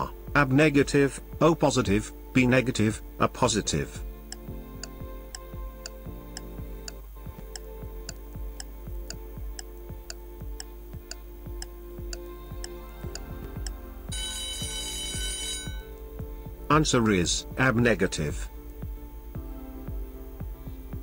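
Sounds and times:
low music bed: 0.0 - 21.0
clock ticking: 4.3 - 19.0
alarm clock ringing: 14.1 - 15.9.

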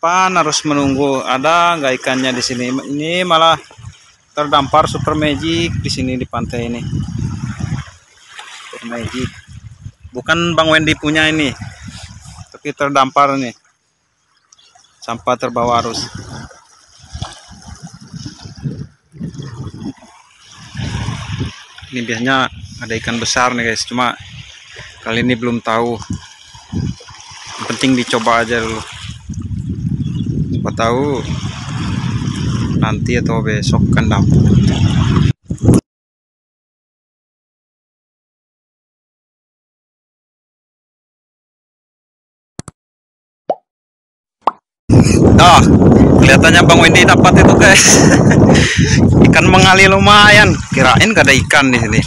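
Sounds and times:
small waves washing ashore: 0.2 - 29.4, 31.0 - 32.8, 46.4 - 52.0
rising pop blips: 43.5 - 43.7.

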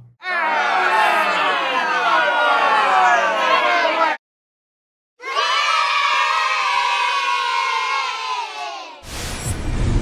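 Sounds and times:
children cheering: 0.2 - 4.2, 5.2 - 9.0.

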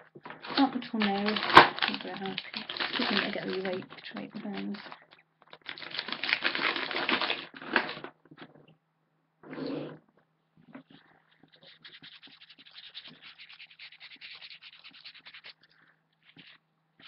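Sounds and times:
rustling and clicking of small items: 0.0 - 8.8
tiny crackles: 0.3 - 8.1.

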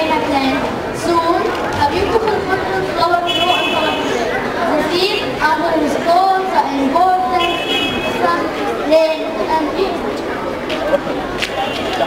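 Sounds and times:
voices talking: 0.0 - 12.0.

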